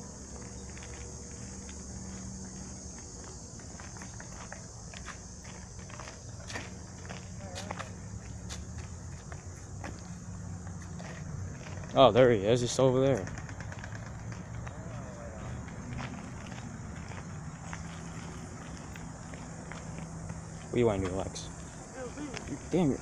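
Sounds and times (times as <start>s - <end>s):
faint clicks and ticks: 13.1s - 14.8s.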